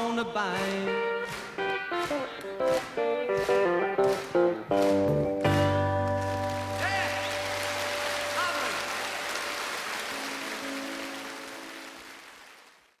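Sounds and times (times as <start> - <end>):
audience applauding: 0.6 - 13.0.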